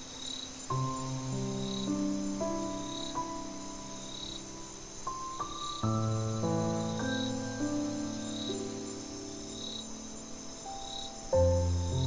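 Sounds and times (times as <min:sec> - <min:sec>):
crickets chirping: 0:00.0 - 0:12.0
slow solo piano: 0:00.0 - 0:12.0.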